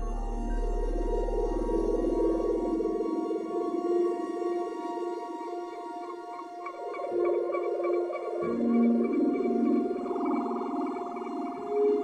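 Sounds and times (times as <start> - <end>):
ambient electronic music: 0.0 - 12.0.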